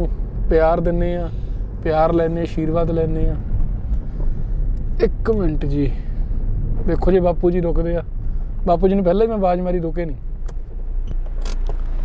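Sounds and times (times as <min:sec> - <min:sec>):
car rumble from inside cabin: 0:00.0 - 0:12.0.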